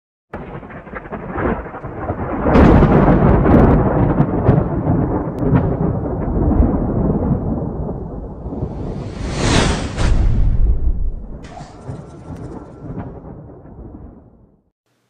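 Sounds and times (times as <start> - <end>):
thunder rumbling with crackles: 0.3 - 14.7.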